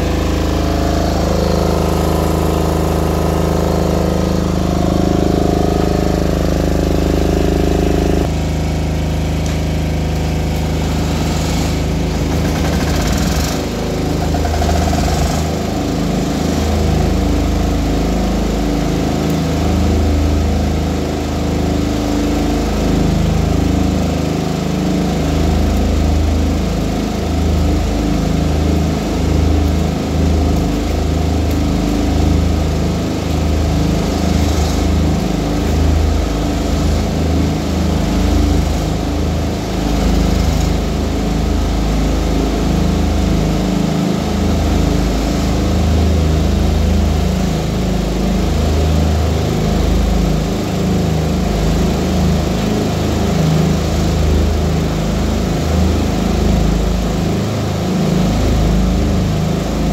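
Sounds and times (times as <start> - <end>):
diesel generators droning: 0.0 - 59.9.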